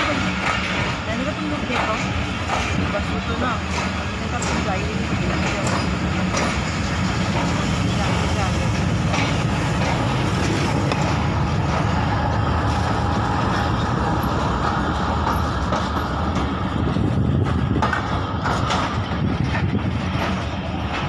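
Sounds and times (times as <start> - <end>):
passenger voices: 0.0 - 21.0
train rumbling over tracks: 0.0 - 21.0.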